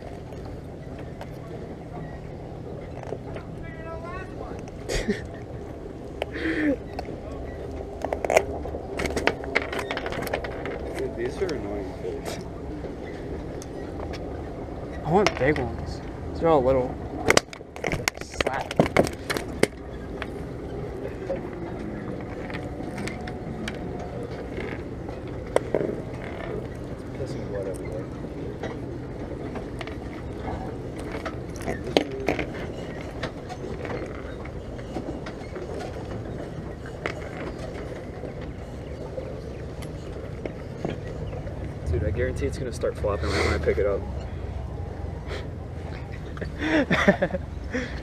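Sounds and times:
faint indistinct voices: 0.0 - 17.3
low outdoor rumble: 0.0 - 48.0.

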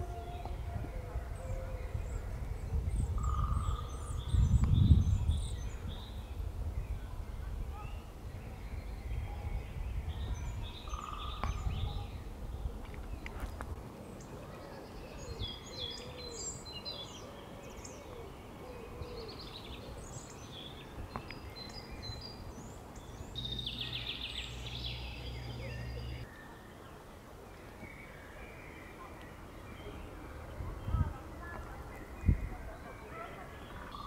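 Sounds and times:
low hoot-like bird calls: 0.0 - 4.6, 10.4 - 12.7, 14.5 - 20.1
songbirds chirping and trilling: 0.0 - 34.0.

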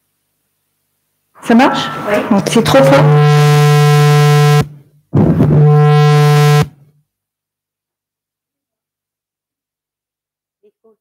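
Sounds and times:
low electronic buzz: 1.4 - 6.9.

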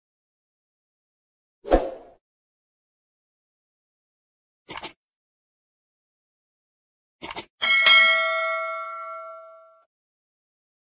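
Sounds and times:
notification bell ding: 7.6 - 9.9.

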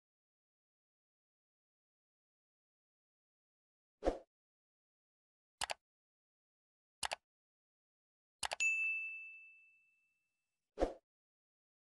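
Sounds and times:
notification bell ding: 8.5 - 10.1.

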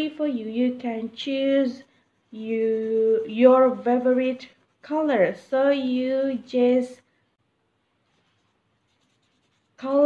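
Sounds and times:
pencil scratching on paper: 0.6 - 5.6, 8.1 - 10.0.

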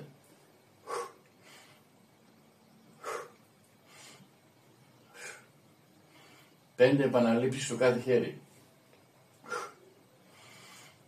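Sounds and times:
man breathing hard: 0.8 - 1.9, 2.9 - 4.4, 5.0 - 6.7, 9.4 - 11.0.

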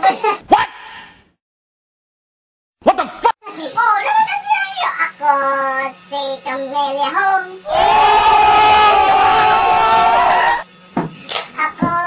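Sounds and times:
loud noisy passage: 7.7 - 10.7.

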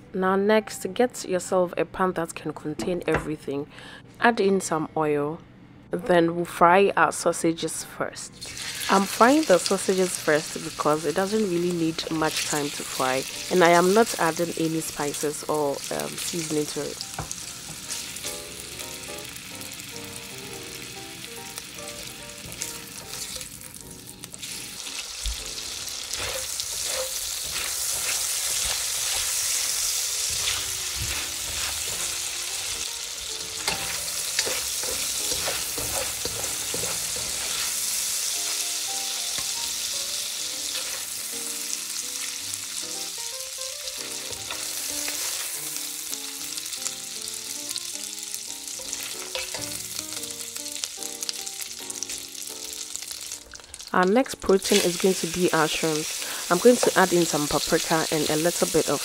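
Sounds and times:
sausage sizzling in hot oil: 8.4 - 59.0
spatula scraping a pan: 25.9 - 32.8, 33.4 - 39.6, 40.6 - 41.2.

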